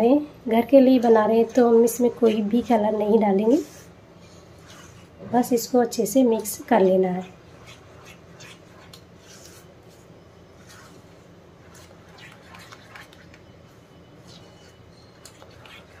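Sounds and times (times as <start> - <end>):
spatula scraping and swishing: 1.0 - 16.0.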